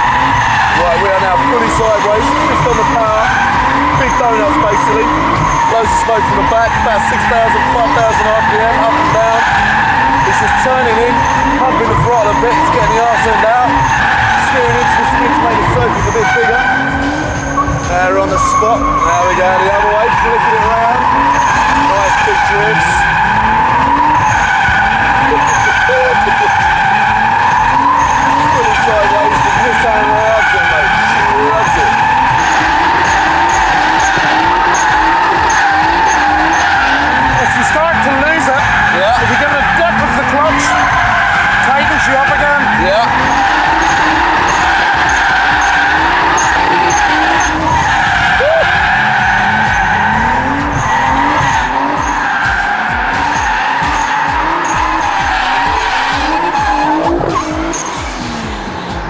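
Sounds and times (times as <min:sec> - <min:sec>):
car engine revving: 0:00.0 - 0:59.0
tyres squealing: 0:00.0 - 0:59.0.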